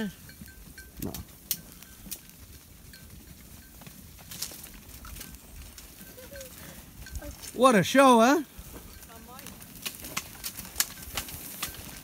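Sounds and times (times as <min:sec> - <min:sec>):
hooves tapping on stony ground: 0:00.0 - 0:12.0.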